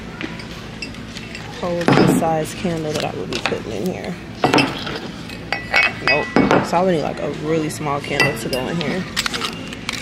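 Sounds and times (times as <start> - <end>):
candle clinking against ceramic holder: 4.4 - 6.8, 8.0 - 9.0.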